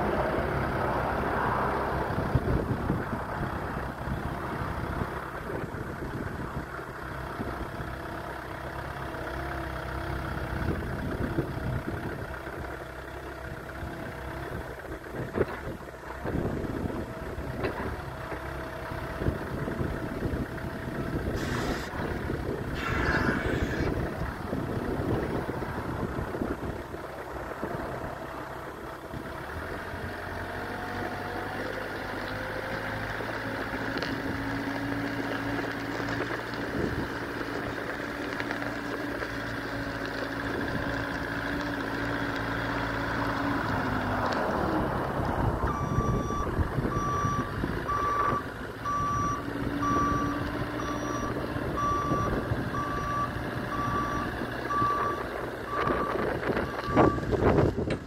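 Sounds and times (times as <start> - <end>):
forklift engine running: 0.0 - 58.0.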